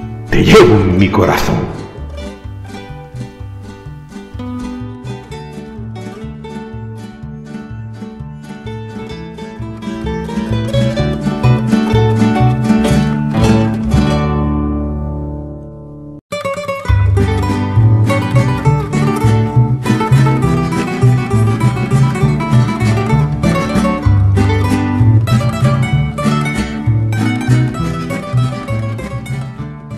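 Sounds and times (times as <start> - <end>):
acoustic guitar music: 0.0 - 29.9.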